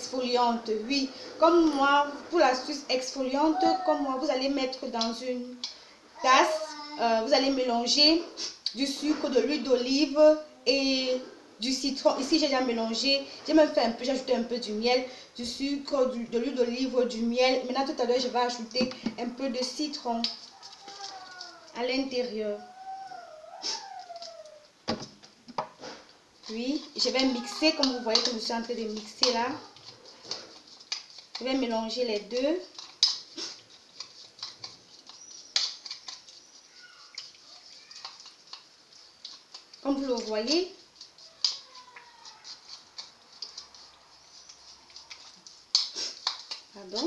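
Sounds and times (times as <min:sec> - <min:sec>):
stirring clicks: 0:04.6 - 0:05.8, 0:16.8 - 0:22.2, 0:23.8 - 0:47.0
spoon scraping plastic bowl: 0:16.0 - 0:22.2, 0:25.7 - 0:47.0
spoon knocking plastic bowl: 0:18.8 - 0:19.2.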